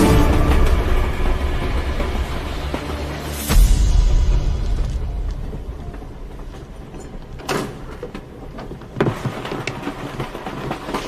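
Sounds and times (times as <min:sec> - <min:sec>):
railway carriage rumble: 0:00.0 - 0:11.0
small rattles and clicks: 0:06.8 - 0:11.0.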